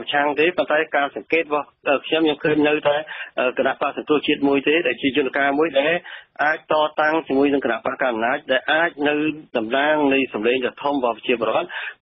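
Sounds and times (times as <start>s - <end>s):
radio news broadcaster talking: 0.0s - 12.0s.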